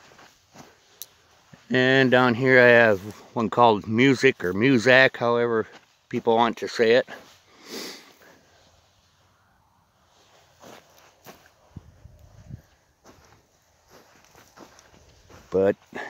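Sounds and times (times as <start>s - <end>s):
soft footsteps: 0.0s - 7.5s, 8.1s - 16.0s
person sniffing: 7.5s - 8.3s.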